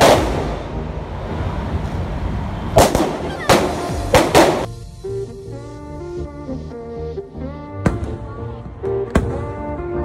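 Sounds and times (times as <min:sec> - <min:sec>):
firecracker bangs: 0:00.0 - 0:00.8, 0:02.8 - 0:04.8.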